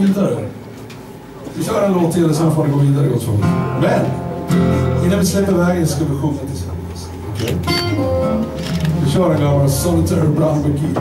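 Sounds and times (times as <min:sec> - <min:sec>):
resonator guitar notes ringing: 0:07.7 - 0:10.1.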